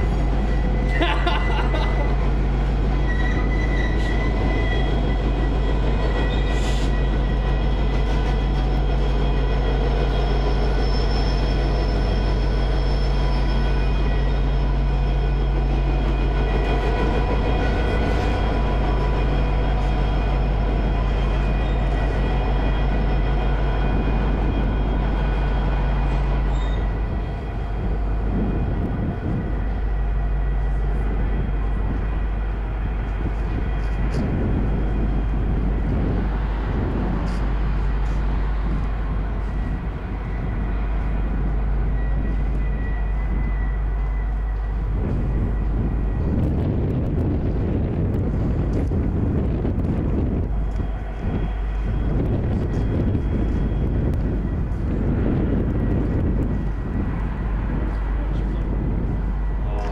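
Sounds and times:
diesel locomotive engines droning: 0.0s - 59.9s
train rumble: 0.0s - 59.9s.

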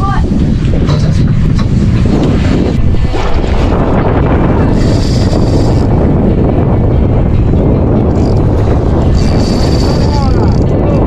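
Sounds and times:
sea water washing: 0.0s - 11.0s
wind buffeting microphone: 0.0s - 11.0s.

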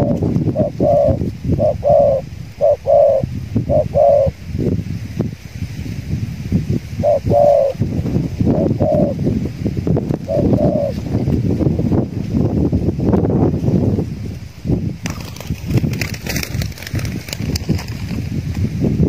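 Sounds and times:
doves cooing: 0.0s - 4.4s, 6.9s - 9.3s, 10.2s - 11.2s
steady low rumble: 0.0s - 19.0s.

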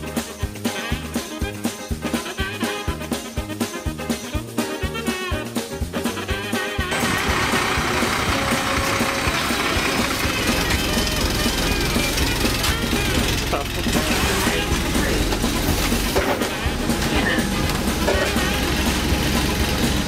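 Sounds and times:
bus engine low rumble: 7.0s - 20.0s
people's voices: 8.0s - 18.8s.

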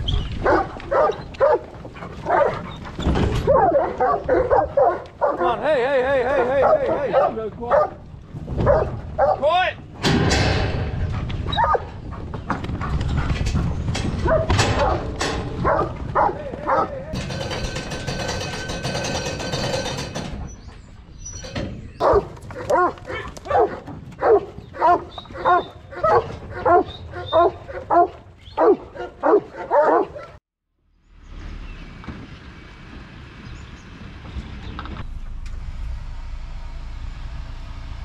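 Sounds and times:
dogs barking: 0.4s - 8.0s, 8.6s - 9.5s, 11.4s - 12.0s, 14.1s - 17.4s, 22.0s - 30.4s
steady hum: 35.0s - 38.0s.

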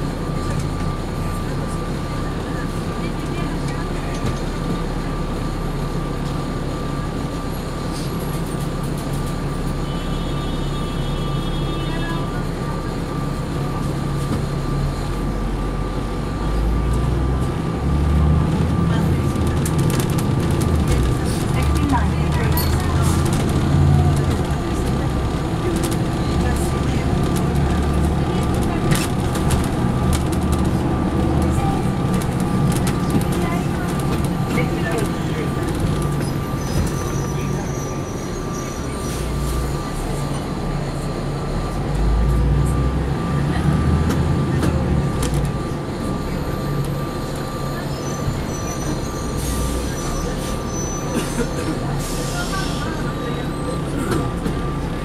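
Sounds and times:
bus diesel engine: 0.0s - 55.0s.

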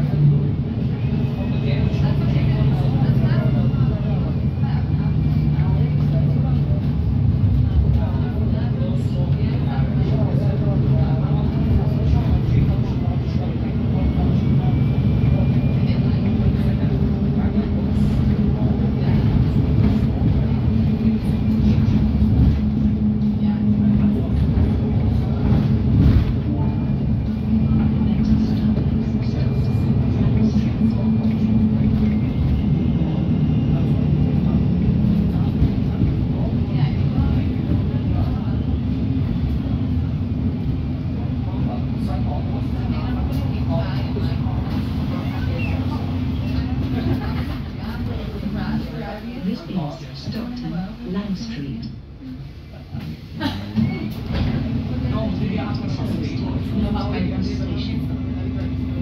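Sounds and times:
bus engine drone: 0.0s - 59.0s
road noise: 0.0s - 59.0s.

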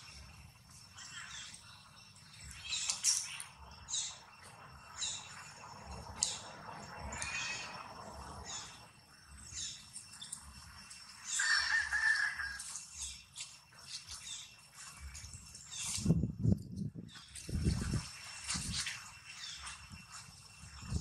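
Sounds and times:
birds chirping and calling: 0.8s - 14.9s.

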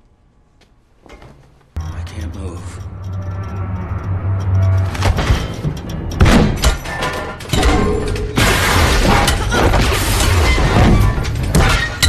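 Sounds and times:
orchestral score: 1.8s - 8.2s
crashes and shattering impacts: 5.0s - 12.0s.

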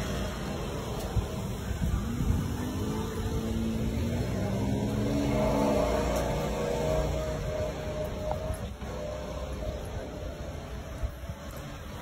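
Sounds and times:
vehicle engine passing by: 1.7s - 12.0s.

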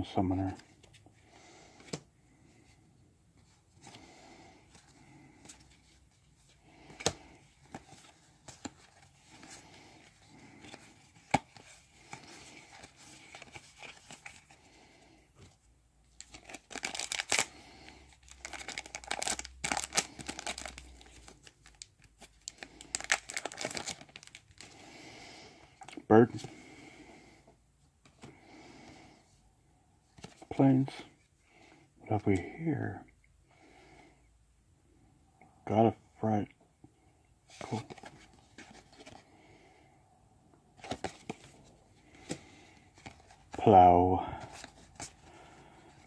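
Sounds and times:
foil wrapper tearing and crinkling: 16.3s - 17.6s, 18.3s - 21.9s, 22.5s - 24.4s.

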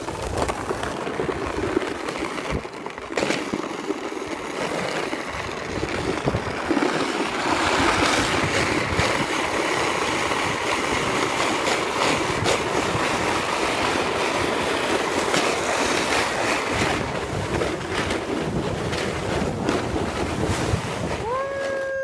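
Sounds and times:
sled scraping over icy snow: 0.0s - 22.0s
wind on microphone: 5.3s - 7.0s, 7.6s - 9.6s, 15.9s - 22.0s.

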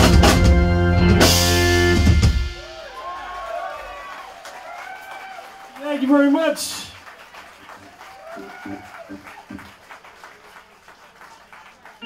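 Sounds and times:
audience clapping and cheering: 2.4s - 12.0s
person whooping: 2.6s - 5.9s, 7.8s - 9.7s.

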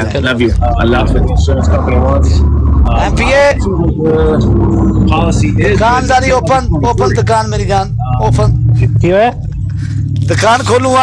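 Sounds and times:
loud low rumble: 0.0s - 11.0s
voices talking over phone: 0.0s - 11.0s.

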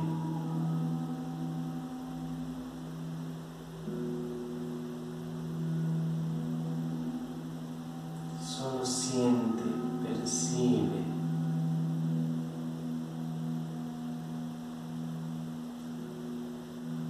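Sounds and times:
higher tone: 0.0s - 17.0s
low musical drone: 0.0s - 17.0s.

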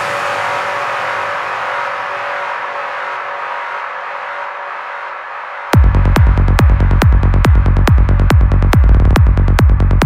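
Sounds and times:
synth noise wash: 0.0s - 9.7s.

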